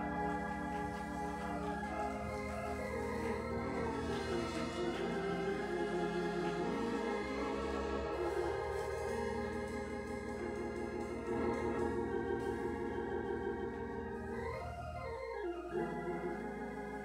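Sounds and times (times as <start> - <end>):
organ playing sustained chords: 0.0 - 17.0.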